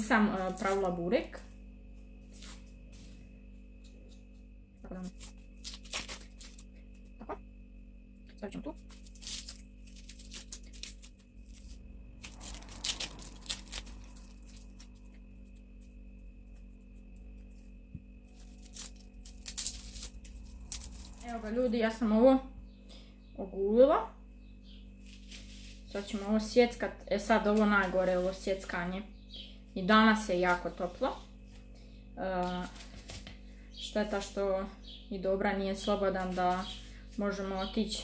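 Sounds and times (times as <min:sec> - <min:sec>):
onion skins crackling and tearing: 0:00.0 - 0:01.2, 0:03.8 - 0:07.4, 0:08.3 - 0:22.0, 0:24.8 - 0:28.7, 0:32.4 - 0:34.3.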